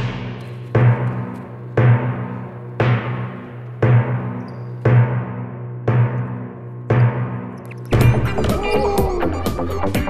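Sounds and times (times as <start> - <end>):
slow heavy beat hits: 0.0 - 10.0.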